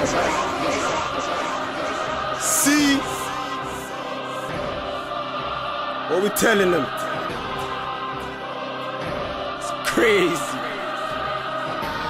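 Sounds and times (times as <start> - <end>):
instrumental music with choir-like chords: 0.0 - 12.0.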